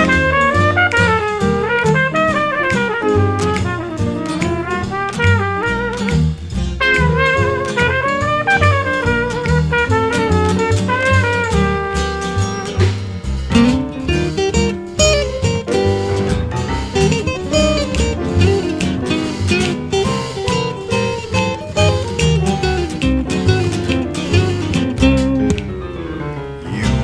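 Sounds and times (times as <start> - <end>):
percussion: 0.0 - 26.0
plucked acoustic guitar: 0.0 - 27.0
string bass: 0.0 - 27.0.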